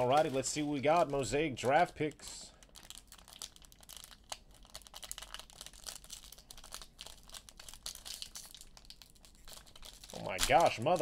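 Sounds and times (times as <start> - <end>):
foil wrapper crinkling and tearing: 0.0 - 11.0.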